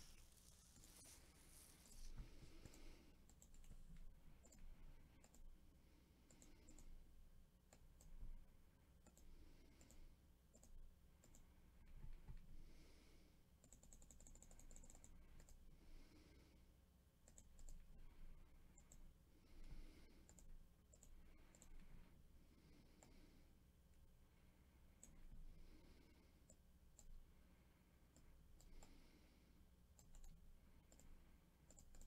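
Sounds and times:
computer mouse clicks: 0.0s - 5.5s, 6.2s - 7.0s, 7.7s - 8.3s, 9.0s - 12.5s, 13.6s - 15.6s, 17.2s - 18.0s, 18.7s - 21.9s, 22.9s - 23.3s, 25.0s - 27.2s, 28.1s - 29.2s, 29.9s - 32.0s.

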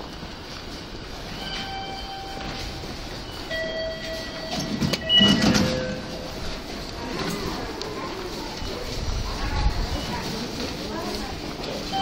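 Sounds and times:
train rumble: 0.0s - 12.0s
train high whining tones: 1.0s - 7.6s.

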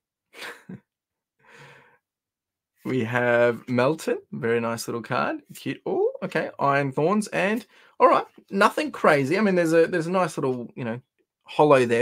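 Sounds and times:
man sighing: 1.4s - 2.0s
man speaking: 2.8s - 12.0s.

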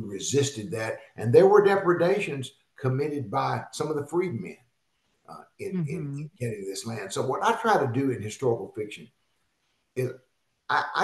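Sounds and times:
man speaking: 0.0s - 4.5s, 5.3s - 9.0s, 10.7s - 11.0s.

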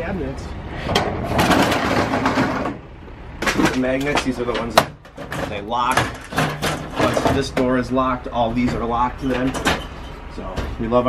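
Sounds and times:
metal roll-up door slats rattling: 1.2s - 2.8s, 3.4s - 7.8s, 8.6s - 10.8s.

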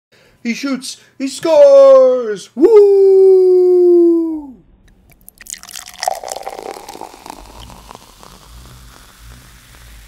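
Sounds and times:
beer fizzing in a glass: 5.1s - 10.0s.

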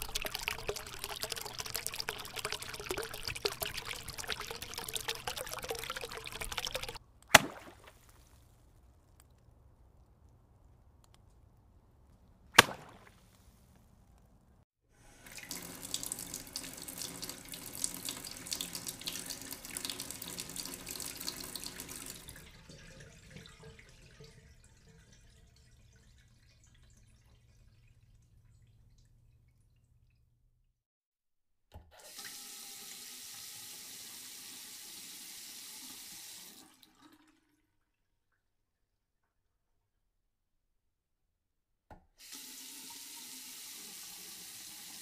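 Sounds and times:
tap water splashing into water: 0.0s - 8.3s, 12.6s - 13.2s, 15.2s - 29.5s
click: 11.0s - 11.4s.

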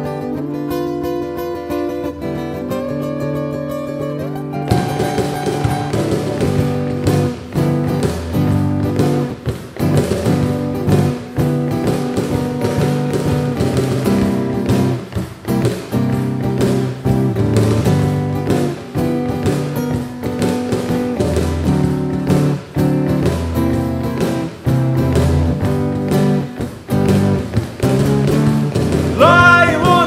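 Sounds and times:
acoustic guitar strummed and picked: 0.0s - 30.0s
cajon struck by hand: 4.0s - 30.0s.

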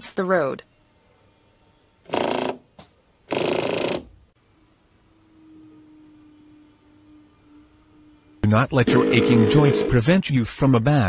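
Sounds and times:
faint steady hum: 0.0s - 10.2s.

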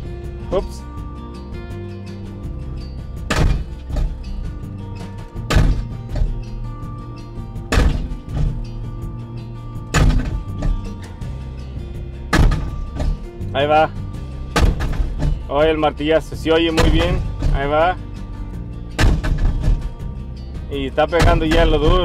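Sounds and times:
loader engine running: 0.0s - 22.0s
hydraulic hammer striking steel post: 3.3s - 4.2s, 5.5s - 6.4s, 7.7s - 8.6s, 9.9s - 11.0s, 12.3s - 13.3s, 14.6s - 15.5s, 19.0s - 19.9s.

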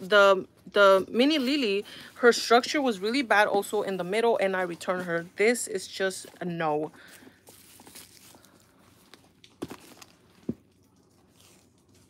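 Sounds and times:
bag rustling: 0.9s - 12.0s.

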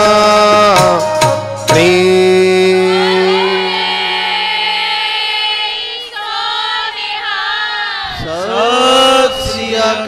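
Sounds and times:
voices chanting together: 2.7s - 10.0s.

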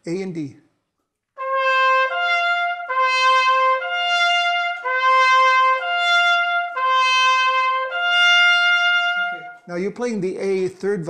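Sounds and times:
piccolo trumpet playing interval: 1.4s - 9.7s.

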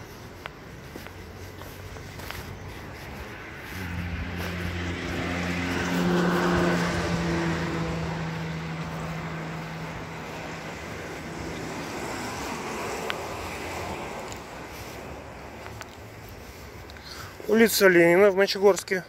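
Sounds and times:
vehicle passing: 0.0s - 17.8s.

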